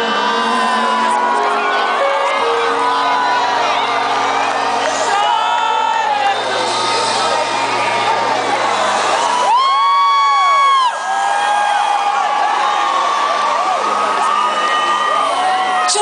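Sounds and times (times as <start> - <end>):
concert crowd cheering: 0.0 - 16.0.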